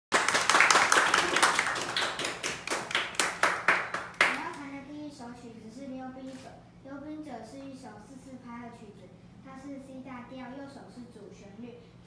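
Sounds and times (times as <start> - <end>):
audience clapping: 0.1 - 4.5.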